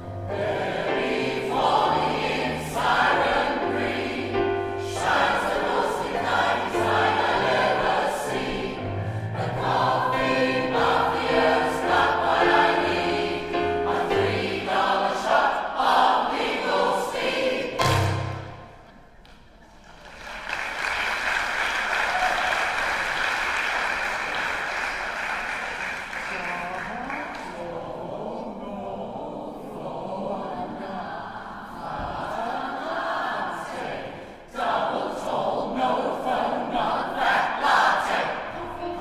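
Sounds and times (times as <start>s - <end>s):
choir singing a polka: 0.0s - 19.0s, 27.2s - 39.0s.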